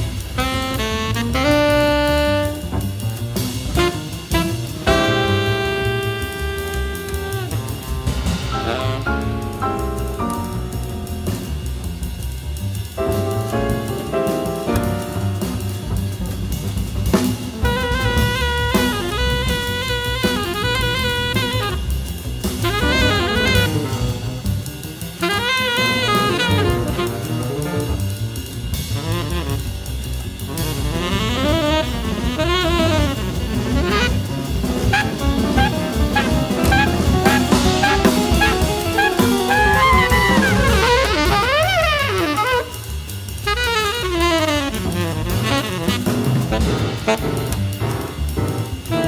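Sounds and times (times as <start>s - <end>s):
drum kit: 0.0s - 49.0s
jazz saxophone solo: 0.0s - 49.0s.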